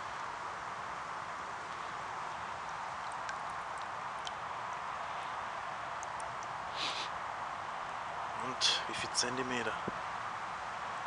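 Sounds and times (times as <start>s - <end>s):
steady hiss: 0.0s - 11.0s
faint clicks: 6.0s - 6.6s.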